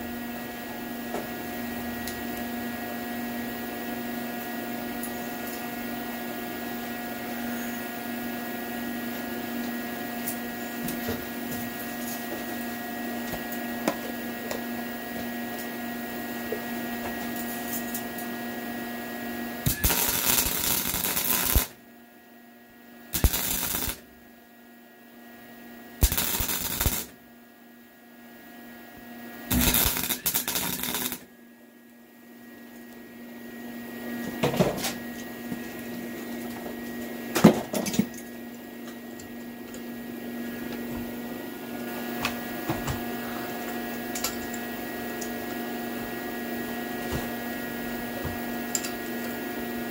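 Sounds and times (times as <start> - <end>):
steady electrical hum: 0.0 - 49.9
welding arc crackling: 19.6 - 21.8, 23.1 - 24.2, 26.0 - 27.2, 29.5 - 31.3.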